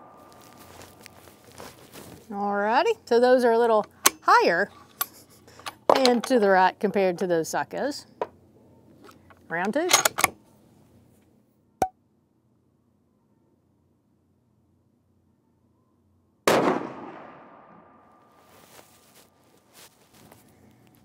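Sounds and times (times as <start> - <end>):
rifle shot with echo: 16.5 - 17.9.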